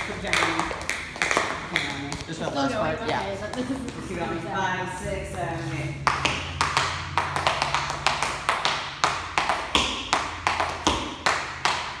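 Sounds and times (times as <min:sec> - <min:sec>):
tap shoes striking floor: 0:00.0 - 0:02.4, 0:06.1 - 0:12.0.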